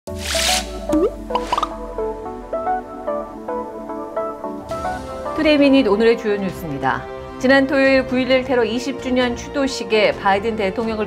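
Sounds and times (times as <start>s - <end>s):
synthesized musical notes: 0.1s - 7.4s
rising plop-like blips: 0.2s - 1.8s.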